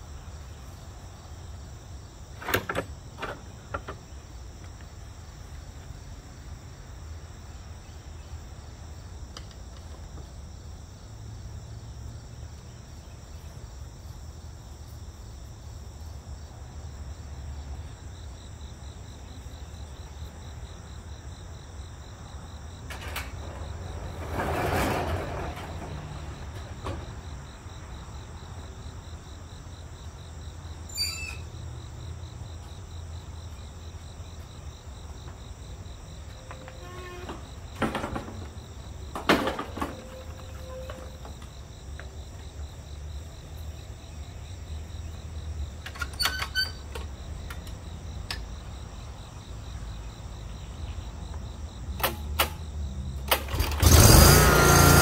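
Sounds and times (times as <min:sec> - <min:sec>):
insects chirring: 0:00.0 - 0:55.0.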